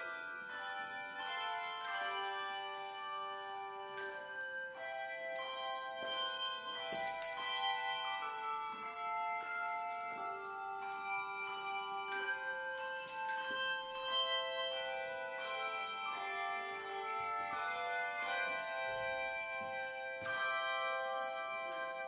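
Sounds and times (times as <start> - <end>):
handbell choir playing: 0.0 - 22.0.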